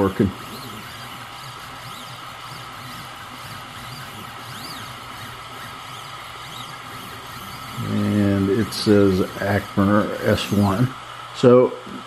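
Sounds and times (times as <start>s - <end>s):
stepper motor whine: 0.0s - 11.6s
steady whirring hiss: 0.0s - 12.0s.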